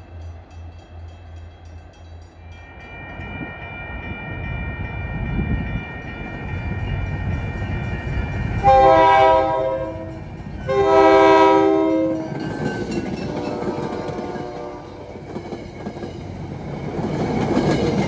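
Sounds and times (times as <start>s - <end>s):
train rumbling and clattering: 0.0s - 18.0s
train horn blasts: 8.6s - 12.4s, 13.2s - 15.1s.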